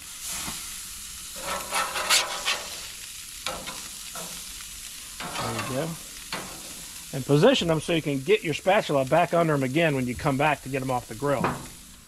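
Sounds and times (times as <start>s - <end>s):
fish sizzling on grill: 0.0s - 12.0s
metal spatula scraping: 1.3s - 2.9s, 5.1s - 6.8s.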